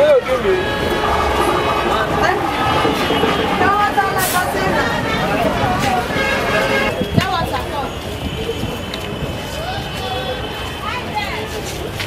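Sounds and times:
crowd voices: 0.0s - 12.0s
traffic rumble: 0.0s - 12.0s.

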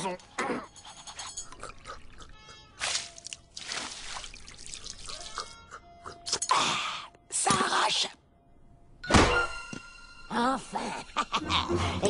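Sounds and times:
drink dribbling: 1.1s - 5.6s
cartoon drink gulping: 1.2s - 5.6s
soft background music: 2.1s - 12.0s.

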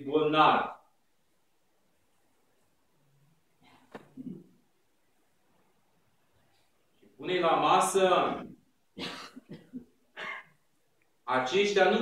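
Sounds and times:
man speaking into a microphone: 0.0s - 0.8s, 7.2s - 8.6s, 11.3s - 12.0s
man coughing: 9.0s - 10.6s.

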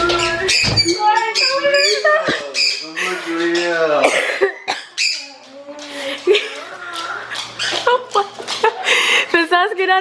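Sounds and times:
woman gasping: 8.8s - 9.4s.

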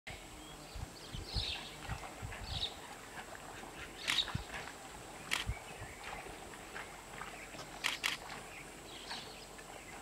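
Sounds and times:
open-air ambience: 0.1s - 10.0s.

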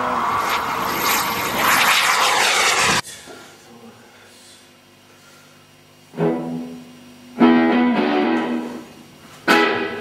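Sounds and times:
jet aircraft whine: 0.0s - 3.1s.

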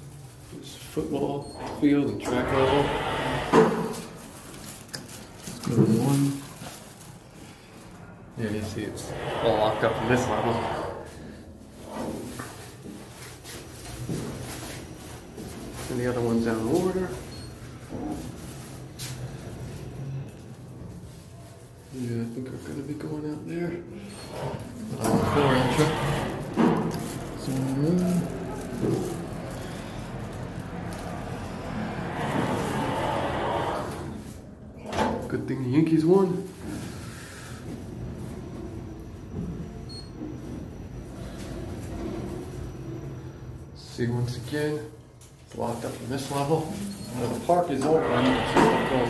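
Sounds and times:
elevator low hum: 1.2s - 4.5s, 8.0s - 18.8s, 24.0s - 35.0s.

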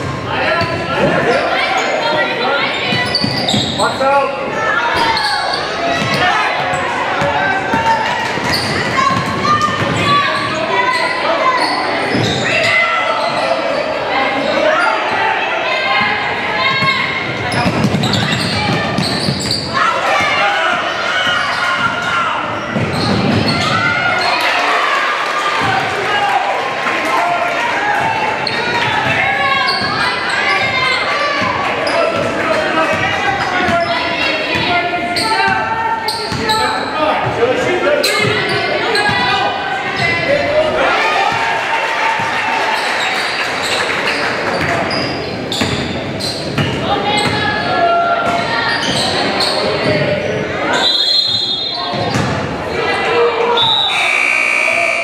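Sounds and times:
hubbub of voices in gym: 0.0s - 55.0s.

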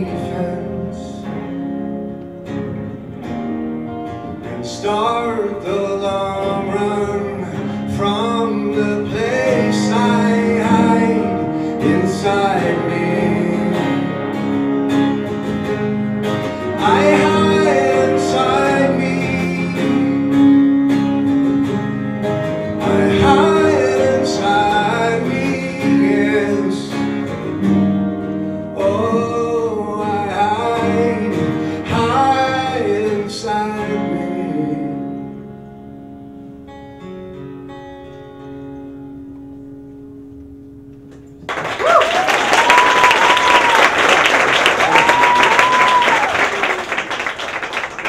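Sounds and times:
man singing: 0.0s - 1.3s, 4.4s - 14.5s, 16.7s - 20.7s, 22.7s - 27.6s, 28.7s - 35.4s
acoustic guitar: 0.0s - 48.0s
electric guitar: 0.0s - 48.0s.

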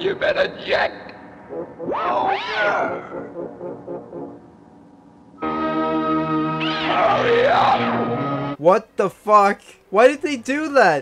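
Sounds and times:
warped monster roar: 1.8s - 3.2s, 6.6s - 8.1s
sustained brass chord: 5.4s - 6.6s.

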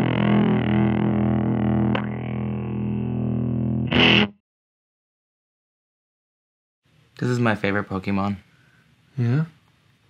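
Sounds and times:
bright electric guitar strum: 0.0s - 4.4s
electric guitar chord ringing: 0.0s - 4.4s.

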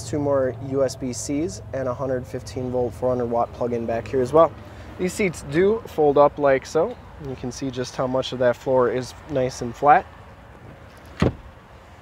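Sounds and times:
seat cushion thump: 11.2s - 11.5s.

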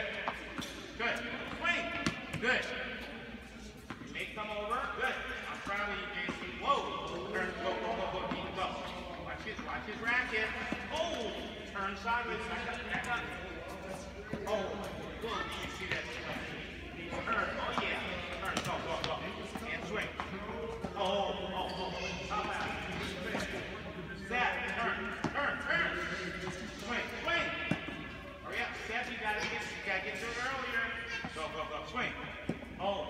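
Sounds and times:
tennis balls bouncing: 0.2s - 3.1s, 17.5s - 21.2s, 27.6s - 28.2s.

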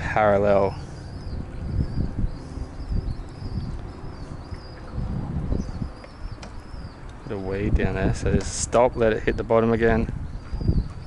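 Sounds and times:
wind buffeting microphone: 0.0s - 11.0s
faint high chirping: 0.6s - 7.5s.

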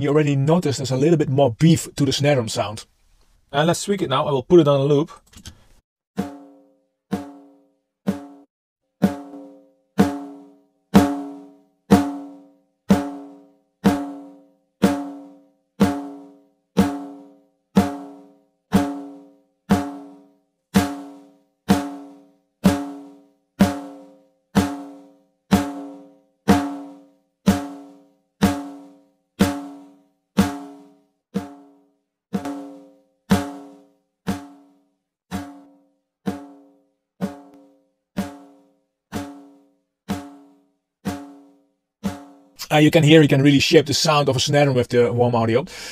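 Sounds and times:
snare drum hits: 32.4s - 34.6s.

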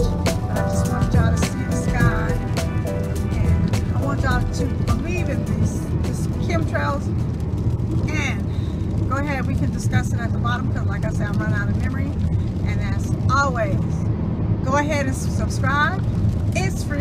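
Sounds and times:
woman talking: 0.0s - 2.6s, 3.2s - 7.2s, 8.0s - 14.0s, 14.6s - 17.0s
car low rumble: 0.0s - 17.0s.

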